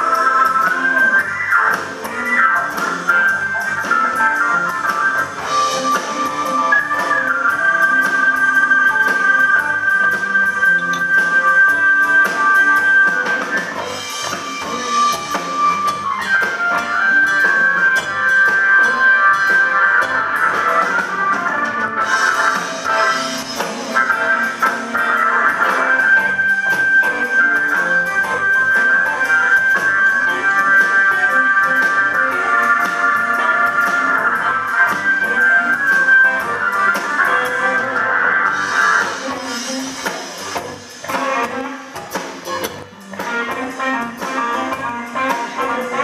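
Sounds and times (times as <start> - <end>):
blues band playing: 0.0 - 46.0.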